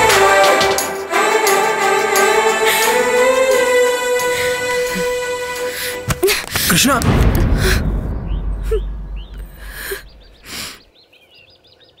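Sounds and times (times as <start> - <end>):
low rumble: 7.0 - 10.5
birds chirping: 7.8 - 12.0.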